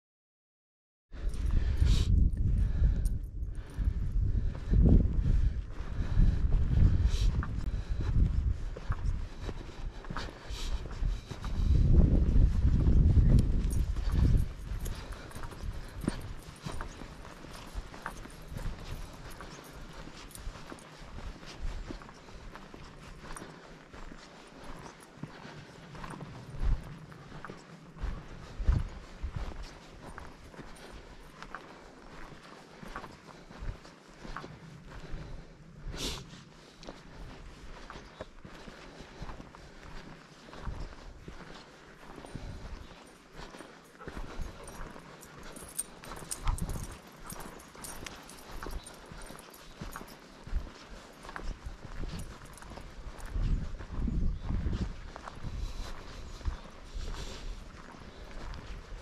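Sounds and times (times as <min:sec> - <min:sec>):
footsteps on dirt trail: 0:01.2 - 0:59.0.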